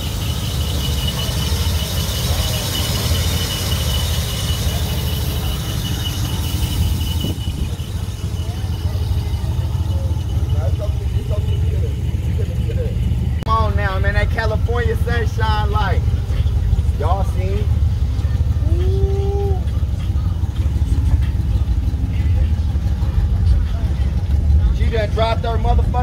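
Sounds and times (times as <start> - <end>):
thin high-pitched whine: 0.0 - 18.6
car engine idling: 0.0 - 26.0.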